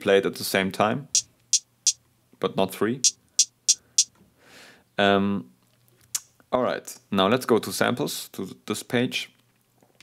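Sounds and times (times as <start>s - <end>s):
crisp hi-hat hits: 1.2s - 2.0s, 3.0s - 4.1s.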